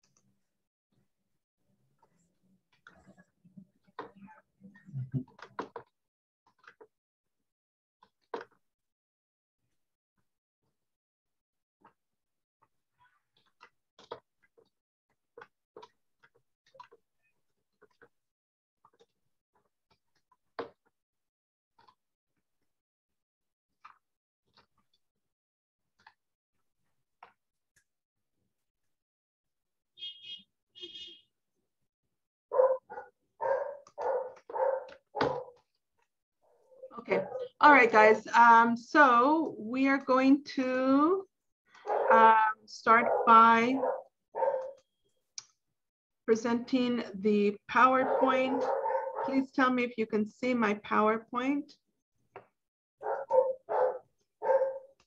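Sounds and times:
dog barking: 0:32.5 - 0:35.6, 0:37.1 - 0:37.5, 0:41.8 - 0:42.2, 0:43.0 - 0:44.8, 0:48.0 - 0:49.4, 0:53.0 - 0:55.0.

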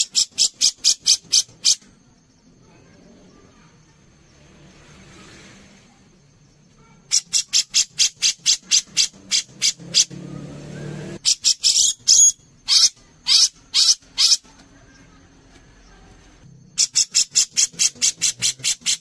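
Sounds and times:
bird calling: 0:00.0 - 0:01.9, 0:06.8 - 0:19.0.

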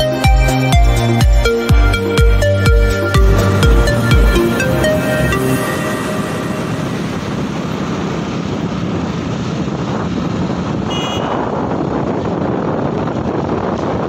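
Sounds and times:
motorcycle riding: 0:00.1 - 0:14.0
wind roaring over microphone: 0:02.0 - 0:14.0.

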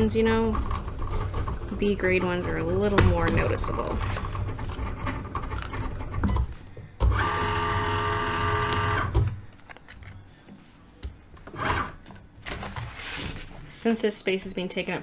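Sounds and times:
cutting machine motor whine: 0:07.1 - 0:09.2
cutting mat brushing: 0:12.6 - 0:13.7.

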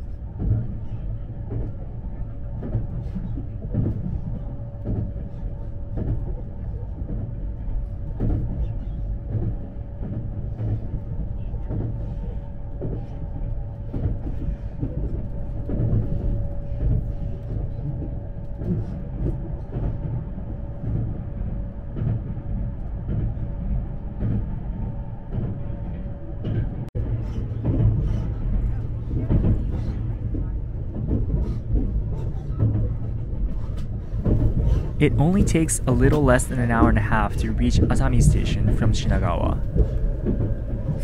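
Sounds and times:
steady hum: 0:00.0 - 0:41.0
wheels rumbling on rail: 0:00.0 - 0:41.0
track clicks and knocks: 0:22.0 - 0:41.0.

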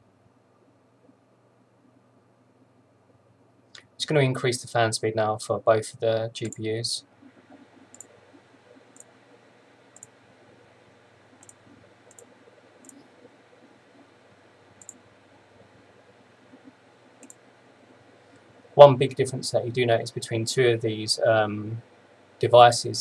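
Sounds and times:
faint low hum: 0:00.0 - 0:23.0
computer mouse clicks: 0:06.4 - 0:06.6, 0:07.4 - 0:08.1, 0:10.0 - 0:10.2, 0:11.4 - 0:13.1, 0:14.8 - 0:15.0, 0:16.6 - 0:17.4.

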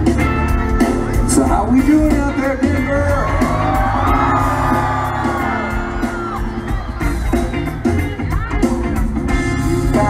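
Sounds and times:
live band music: 0:00.0 - 0:10.0
crowd whooping: 0:03.0 - 0:08.5.

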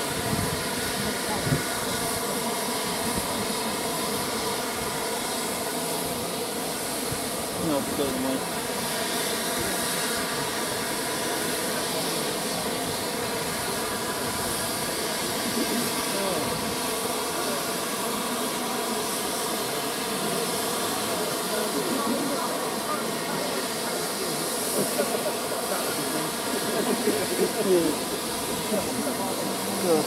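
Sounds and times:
crowd chatter: 0:00.0 - 0:30.0
steam hissing from locomotives: 0:00.0 - 0:30.0.

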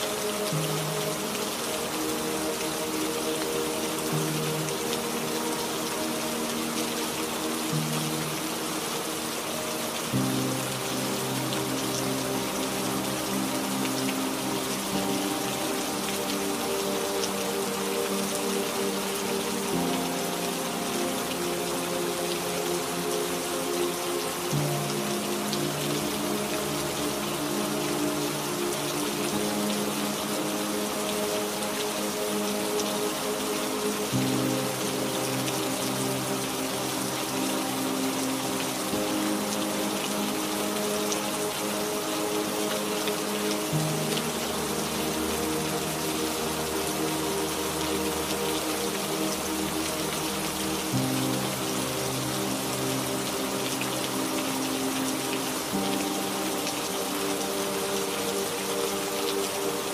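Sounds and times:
slow ambient music: 0:00.0 - 0:59.9
steady rain falling: 0:00.0 - 0:59.9.

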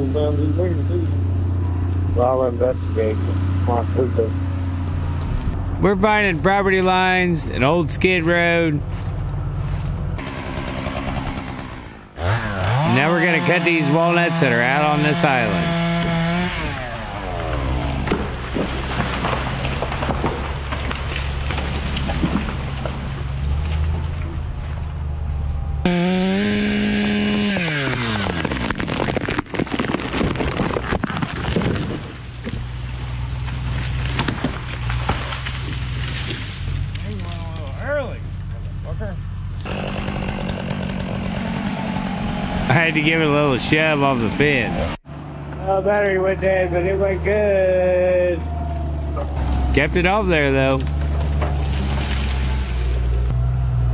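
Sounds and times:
chainsaw cutting wood: 0:10.2 - 0:23.9, 0:25.8 - 0:37.0, 0:39.6 - 0:43.5, 0:49.4 - 0:53.4.

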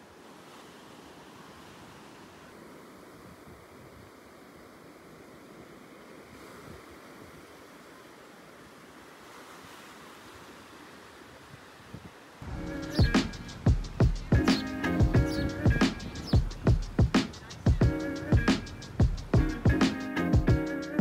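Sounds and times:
surf washing over sandy beach: 0:00.0 - 0:19.0.

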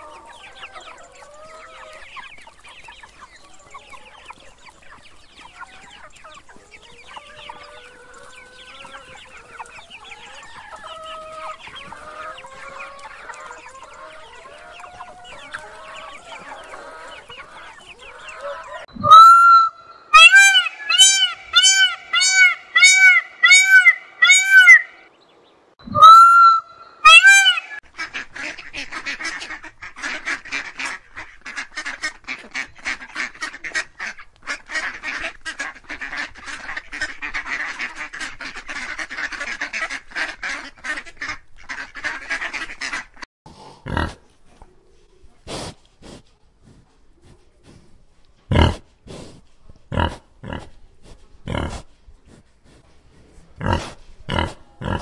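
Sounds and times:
goslings peeping: 0:00.0 - 0:25.0, 0:25.9 - 0:43.2
parrot chicks calling: 0:18.0 - 0:25.0, 0:25.9 - 0:27.8
bird honking: 0:19.0 - 0:25.0, 0:25.9 - 0:27.8.

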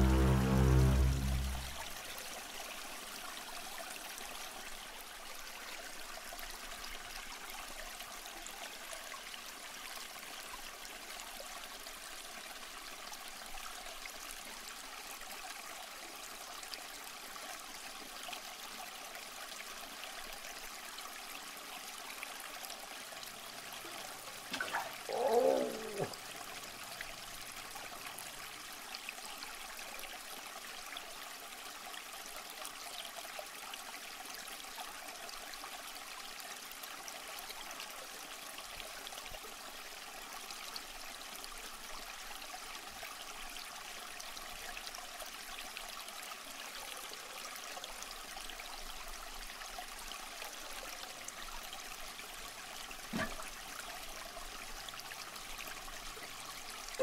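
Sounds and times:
aquarium water trickling: 0:00.0 - 0:02.0, 0:18.6 - 0:36.8
short water plop: 0:24.4 - 0:26.2.

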